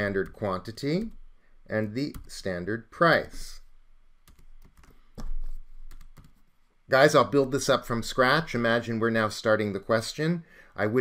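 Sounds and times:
typing on computer keyboard: 4.3 - 6.4.

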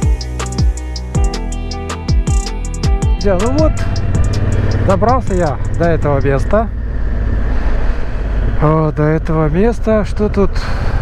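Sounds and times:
motorcycle engine rumbling: 2.8 - 9.8.

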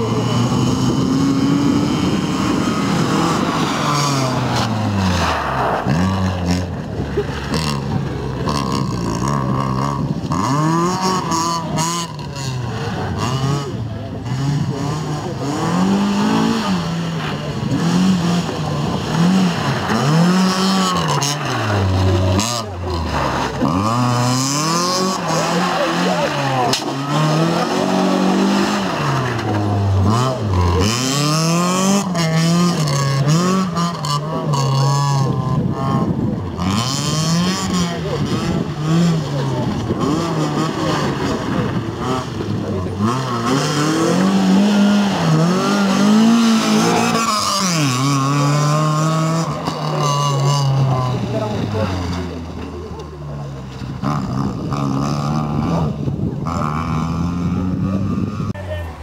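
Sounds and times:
rally car engine revving hard: 0.0 - 58.6
gear changes: 0.0 - 59.0.

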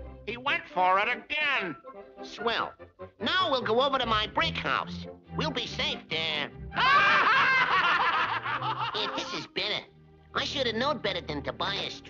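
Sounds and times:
cartoon character snickering: 6.8 - 9.4.

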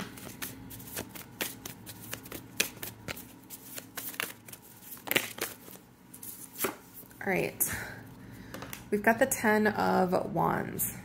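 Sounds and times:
cards being shuffled: 0.0 - 7.1.

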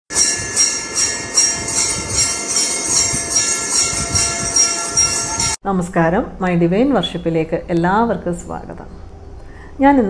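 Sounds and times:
bells ringing rhythmically: 0.1 - 5.6.

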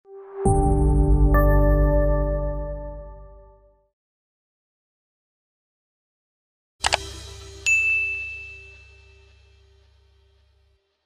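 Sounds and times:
bright bell-like ding: 7.6 - 9.5.

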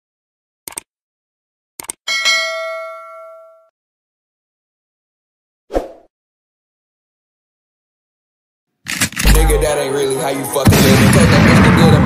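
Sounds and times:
bright bell chime: 2.1 - 3.7.

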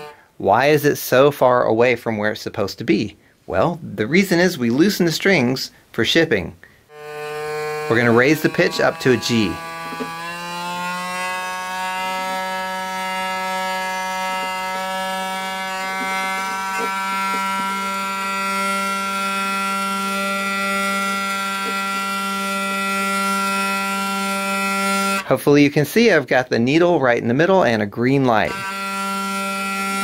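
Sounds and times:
hurdy-gurdy string drone: 6.9 - 25.3, 28.2 - 30.0.

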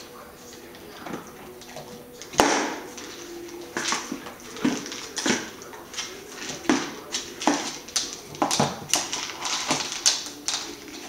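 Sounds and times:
dog claws clicking on floor: 0.5 - 11.0
rubber ball knocking on floor: 6.4 - 10.3.

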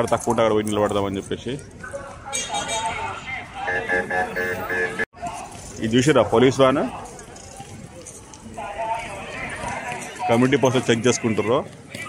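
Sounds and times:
low street rumble: 0.0 - 12.0.

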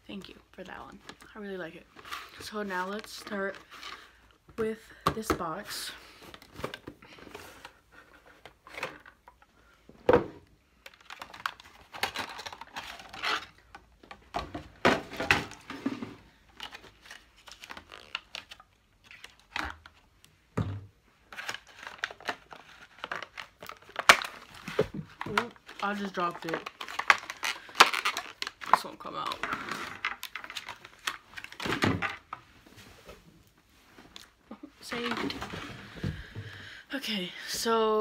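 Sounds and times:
packaging crinkling and tearing: 10.9 - 13.8, 16.6 - 19.9, 21.3 - 31.8.

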